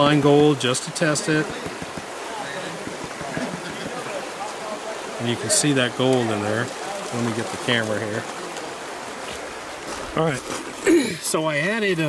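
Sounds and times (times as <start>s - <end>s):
water swishing in a plastic pan: 0.0s - 10.9s
running water hiss: 0.0s - 12.0s.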